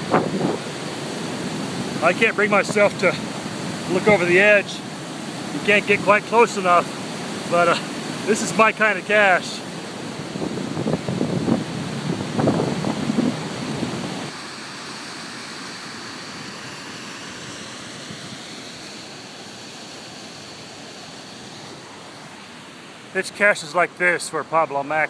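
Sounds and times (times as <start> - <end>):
wind buffeting microphone: 0.0 - 8.4, 9.8 - 14.3
waterfall rushing: 0.0 - 24.9.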